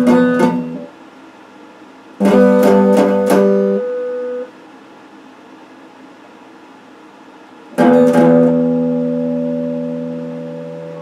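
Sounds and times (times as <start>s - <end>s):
electric guitar note ringing: 0.0s - 0.9s, 2.2s - 4.5s, 7.8s - 11.0s
faint steady hiss: 0.0s - 11.0s.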